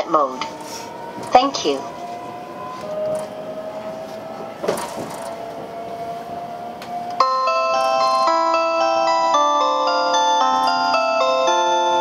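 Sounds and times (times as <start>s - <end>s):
train cabin whine: 0.0s - 12.0s
bell-like onboard chime: 7.2s - 12.0s.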